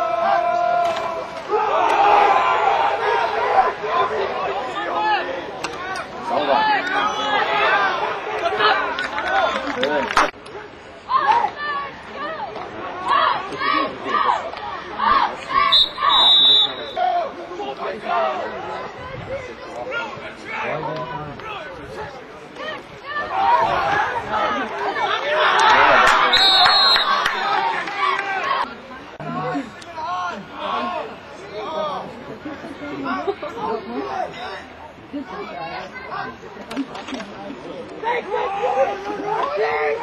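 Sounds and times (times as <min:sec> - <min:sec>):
babble of overlapping voices: 0:00.0 - 0:26.4, 0:27.1 - 0:40.0.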